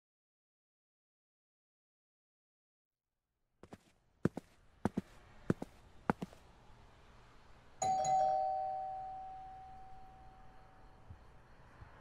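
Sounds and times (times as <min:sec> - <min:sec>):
two-tone doorbell chime: 0:07.8 - 0:10.7.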